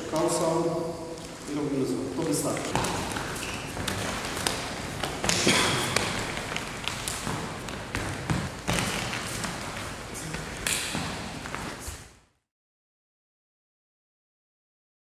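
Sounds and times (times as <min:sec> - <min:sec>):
room noise: 0:00.0 - 0:12.4
hands and forearms slapping: 0:02.6 - 0:11.8.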